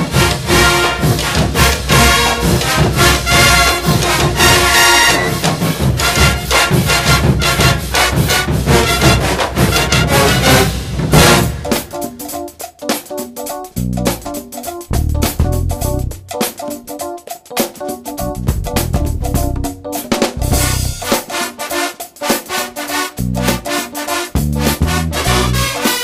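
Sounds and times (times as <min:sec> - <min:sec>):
marching band brass playing: 0:00.0 - 0:12.0, 0:20.4 - 0:26.0
fast drum break: 0:00.0 - 0:26.0.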